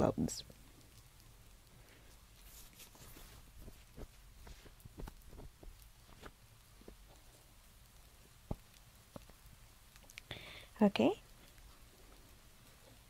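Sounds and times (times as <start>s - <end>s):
gloves rustling: 1.8s - 7.6s.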